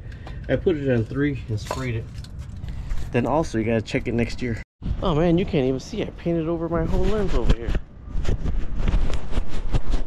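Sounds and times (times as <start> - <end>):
wind rumble on microphone: 6.6 - 10.0.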